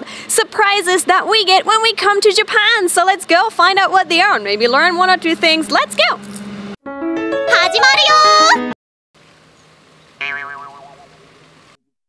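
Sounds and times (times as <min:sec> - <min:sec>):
cartoon boing sound effect: 0:10.2 - 0:11.1.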